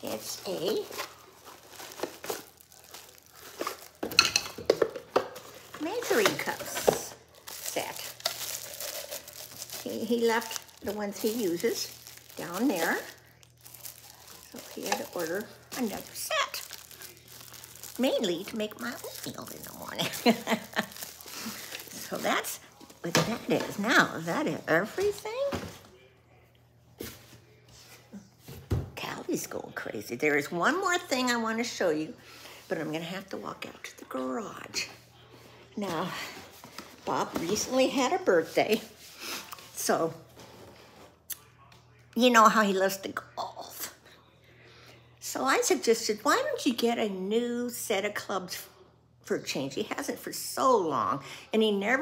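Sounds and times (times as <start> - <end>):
plastic wrapping crinkling: 0.0 - 25.7.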